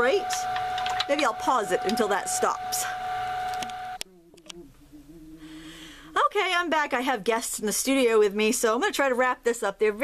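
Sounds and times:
water pump whining: 0.0 - 4.0
faint low hum: 0.0 - 7.4.

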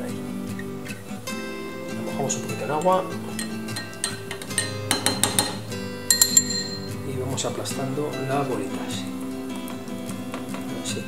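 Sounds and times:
metal spoon clinking in glass: 2.6 - 7.1.

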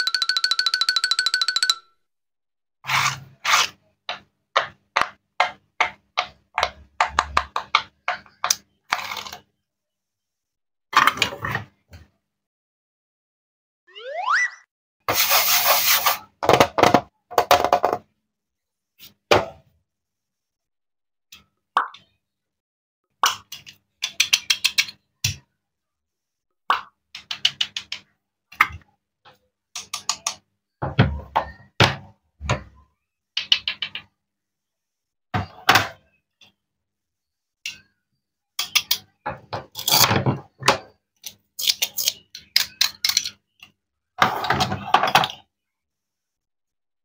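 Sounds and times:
plastic toy pieces clattering: 41.2 - 43.5.

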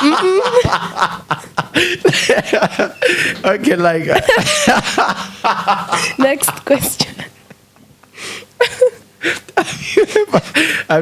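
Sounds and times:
man chuckling: 0.0 - 6.6, 8.6 - 10.9.

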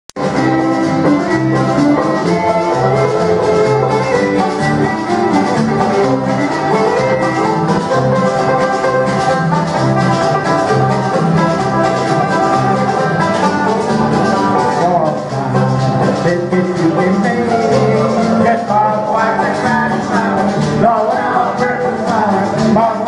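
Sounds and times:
acoustic guitar: 0.2 - 23.0
banjo: 0.2 - 23.0
electric bass guitar low notes: 0.2 - 23.0
fiddle: 0.2 - 23.0.

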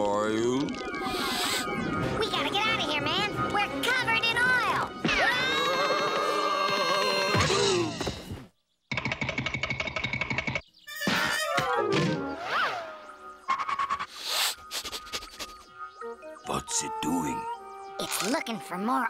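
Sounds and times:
cartoon background music: 0.0 - 8.0, 10.9 - 19.0.

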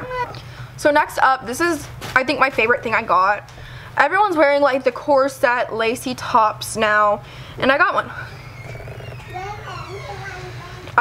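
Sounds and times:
young child babbling: 9.2 - 10.9.

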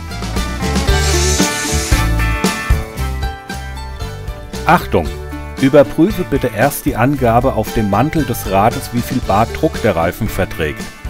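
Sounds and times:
music with guitar and drums: 0.0 - 11.0.

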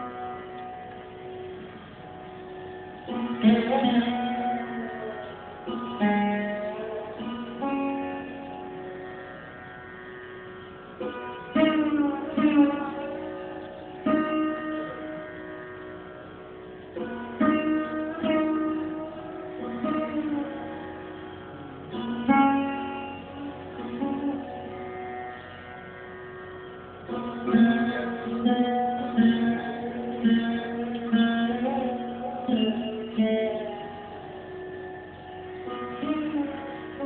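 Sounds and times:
sarod strings ringing: 0.0 - 37.0.

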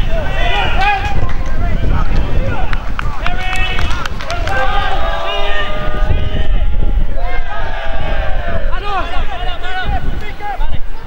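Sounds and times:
people shouting: 0.0 - 10.8
wind buffeting microphone: 0.0 - 11.0.

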